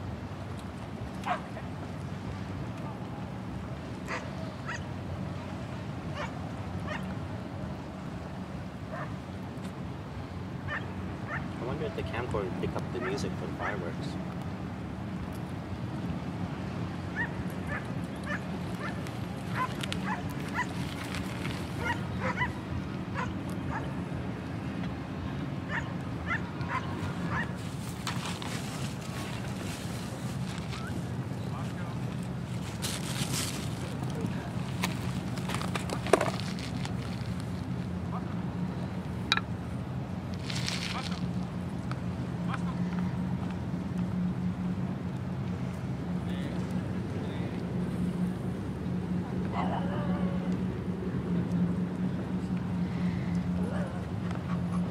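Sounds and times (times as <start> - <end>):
steady low hum: 0.0 - 54.9
dog whimpering and yipping: 21.8 - 22.5.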